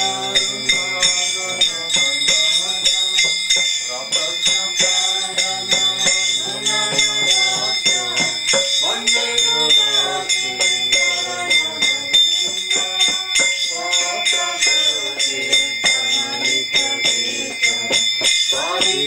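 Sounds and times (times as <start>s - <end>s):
group of voices singing: 0.0s - 19.0s
metal bells and hand cymbals: 0.0s - 19.0s.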